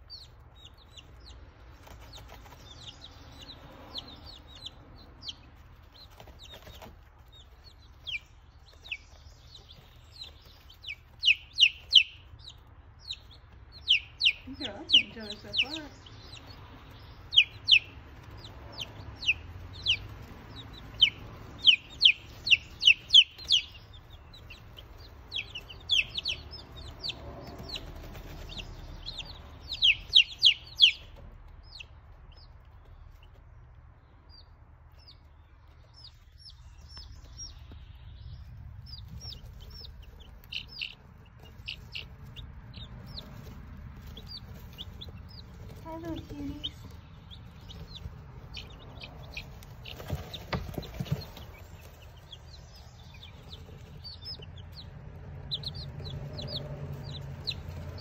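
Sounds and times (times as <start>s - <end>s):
baby chicks peeping: 0.0s - 58.0s
low steady rumble: 0.0s - 58.0s.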